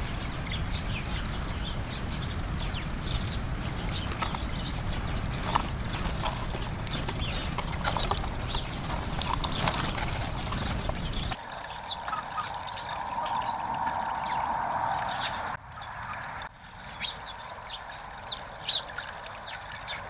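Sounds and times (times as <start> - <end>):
low steady rumble: 0.0 - 11.4
sparrows chirping: 0.0 - 20.0
water trickling into bird bath: 0.0 - 20.0.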